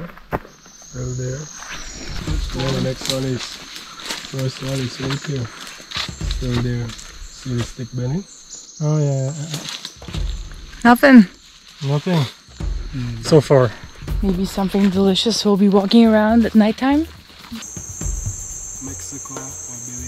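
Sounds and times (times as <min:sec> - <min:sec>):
men talking: 0:01.0 - 0:10.2, 0:11.8 - 0:14.0, 0:18.8 - 0:20.0.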